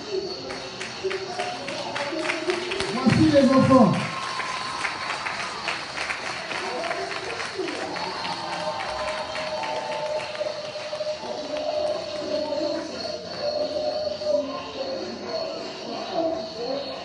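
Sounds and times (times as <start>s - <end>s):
clapping in rhythm: 0.0s - 13.4s.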